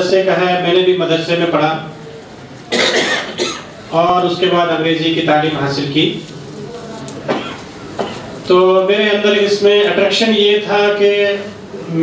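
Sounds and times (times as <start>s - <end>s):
man coughing: 2.7s - 3.7s, 7.3s - 8.3s.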